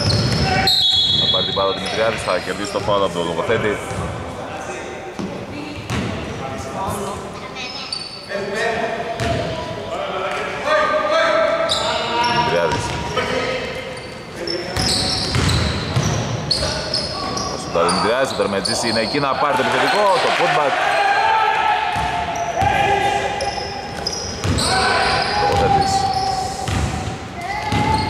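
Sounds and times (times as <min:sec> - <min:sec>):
sneakers squeaking: 0:00.0 - 0:04.3, 0:05.1 - 0:08.5, 0:09.2 - 0:09.8, 0:11.6 - 0:20.4, 0:21.8 - 0:28.0
players calling out: 0:10.8 - 0:28.0.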